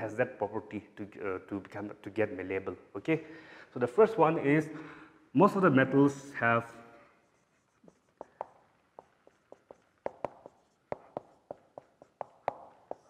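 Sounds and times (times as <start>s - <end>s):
marker squeaking on whiteboard: 7.0s - 13.0s.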